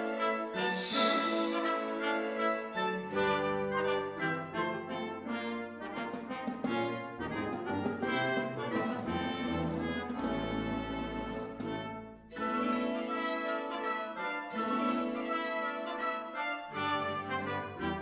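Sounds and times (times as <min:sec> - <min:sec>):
brass playing: 0:00.0 - 0:18.0
chamber orchestra playing dance: 0:00.0 - 0:18.0.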